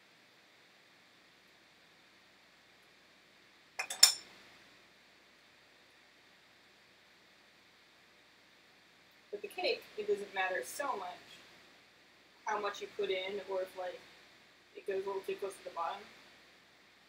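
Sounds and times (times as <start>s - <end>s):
metal spoon clinking on pan: 3.8s - 4.3s.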